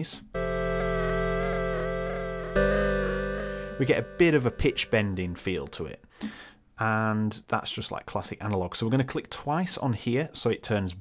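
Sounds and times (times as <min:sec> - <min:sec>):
synth pluck pad: 0:00.4 - 0:05.5.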